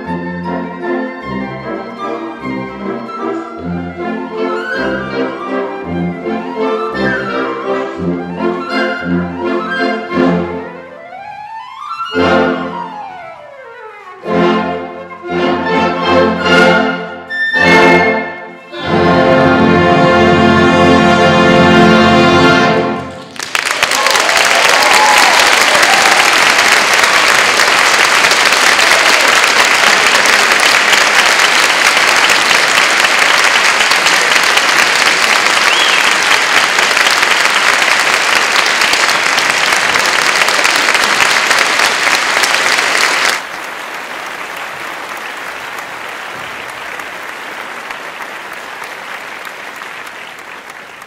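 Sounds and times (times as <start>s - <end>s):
audience applauding: 23.0s - 51.0s.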